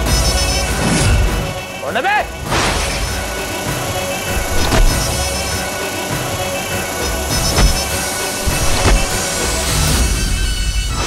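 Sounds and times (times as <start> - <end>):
dramatic background score: 0.0 - 11.0
sharp impact hits: 4.3 - 5.1, 7.4 - 9.3.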